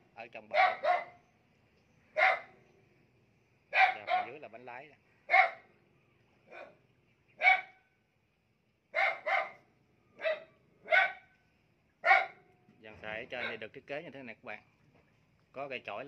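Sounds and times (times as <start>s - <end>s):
dog barking: 0.4s - 1.2s, 2.1s - 2.6s, 3.7s - 4.5s, 5.3s - 5.7s, 6.5s - 6.8s, 7.4s - 7.8s, 8.9s - 9.6s, 10.2s - 11.3s, 12.0s - 12.5s, 13.4s - 13.7s.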